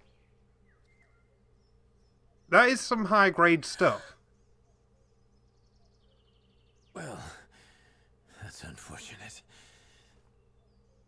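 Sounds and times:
man sighing: 7.0s - 7.8s.

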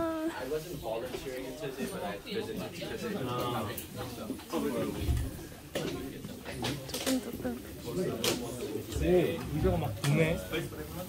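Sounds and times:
quiet background chatter: 0.0s - 11.0s.

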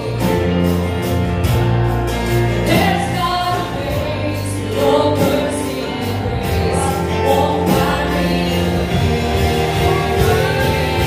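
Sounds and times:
instrumental backing with bass: 0.0s - 11.0s
group singing praise song: 2.7s - 11.0s.

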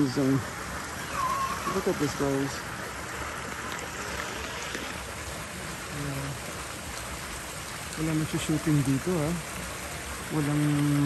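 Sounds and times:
running water hissing: 0.0s - 11.0s.

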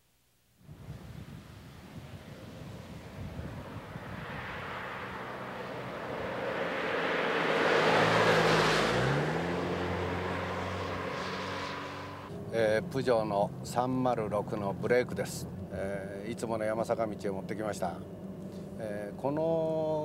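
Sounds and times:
car driving past: 1.8s - 12.8s.

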